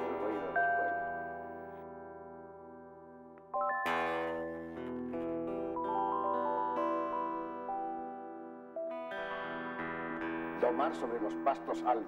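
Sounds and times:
electric guitar: 0:00.0 - 0:12.0
synthesizer chords and melody: 0:03.4 - 0:10.7.

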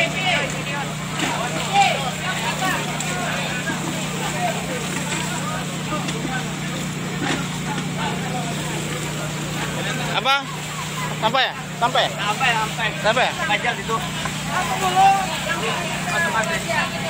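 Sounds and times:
people talking and calling out: 0:00.0 - 0:17.0
pump engine low drone: 0:00.0 - 0:17.0.

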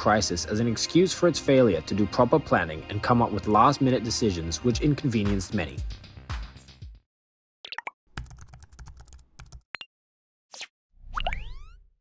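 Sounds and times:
keyboard typing clicks: 0:07.8 - 0:09.6.

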